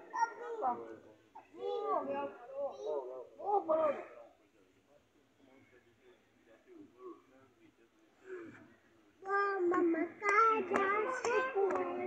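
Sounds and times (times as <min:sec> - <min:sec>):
child singing: 0:09.2 - 0:12.0
sharp clap keeping time: 0:09.7 - 0:12.0.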